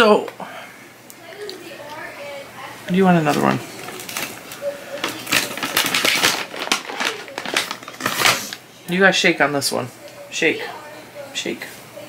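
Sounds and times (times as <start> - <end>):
treat package crinkling: 3.1 - 8.6.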